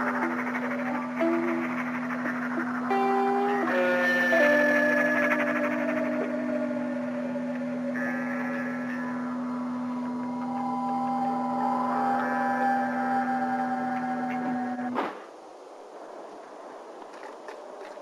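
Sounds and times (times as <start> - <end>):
long held notes: 0.0 - 15.0
low drone: 0.0 - 18.0.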